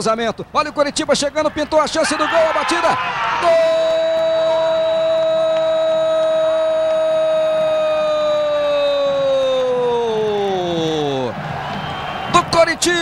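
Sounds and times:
commentator's drawn-out goal cry: 1.4 - 11.4.

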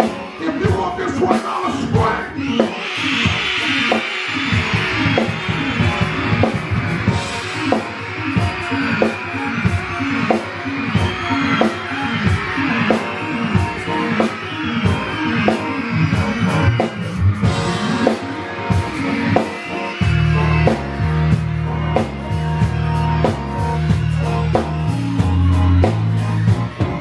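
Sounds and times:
drum kit beat: 0.0 - 27.0
keyboard or guitar chords: 0.0 - 27.0
deep bass line: 20.0 - 27.0.

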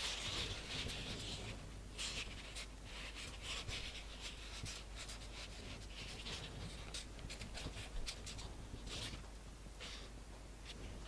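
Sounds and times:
soft rustling of paste petals: 0.0 - 11.0.

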